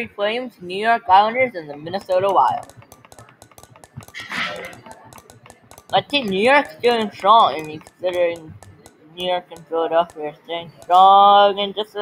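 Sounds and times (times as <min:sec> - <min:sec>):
spinner wheel clicks: 0:01.1 - 0:12.0.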